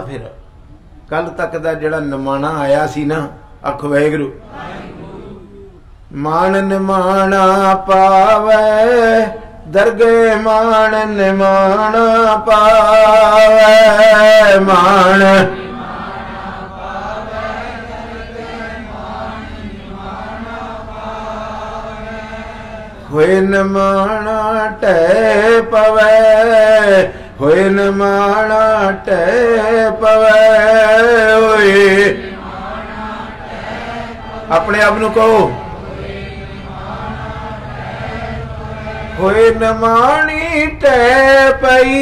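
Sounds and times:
steady low hum: 0.0 - 42.0
congregation chanting in unison: 4.4 - 5.6, 6.2 - 42.0.

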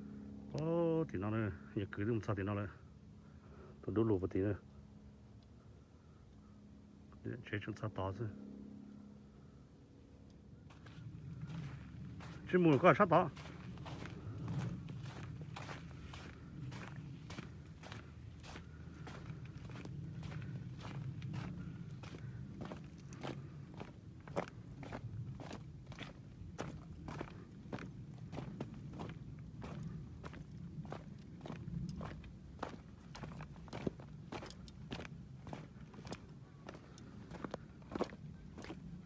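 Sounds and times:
footsteps crunching on stones: 10.7 - 39.0.

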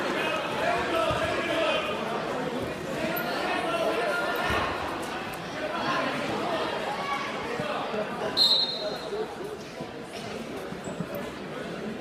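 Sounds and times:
chatter and voices: 0.0 - 12.0
shrill referee whistle blast: 8.4 - 9.0.

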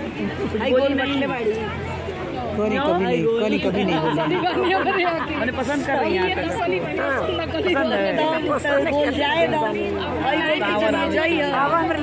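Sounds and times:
women chatting: 0.0 - 12.0.

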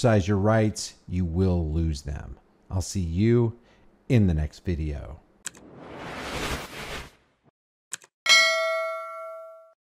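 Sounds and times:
bell ding: 8.3 - 9.8.

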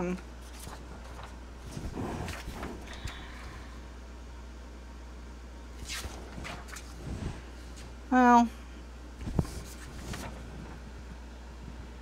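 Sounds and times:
low steady hum: 0.0 - 12.0
paper swish: 0.4 - 3.0, 5.8 - 7.8, 9.2 - 10.5
paper rustling: 0.4 - 3.2, 5.8 - 7.9, 9.2 - 10.8.

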